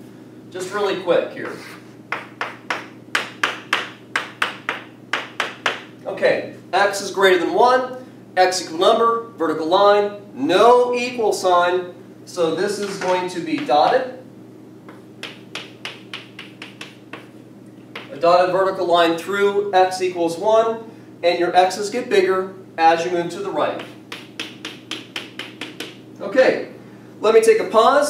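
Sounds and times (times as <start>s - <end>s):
chalk tapping on blackboard: 1.4s - 5.9s, 14.9s - 18.2s, 23.7s - 26.0s.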